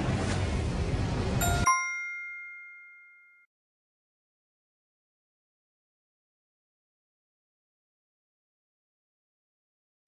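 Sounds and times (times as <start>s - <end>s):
bell chime ding: 1.4s - 3.5s.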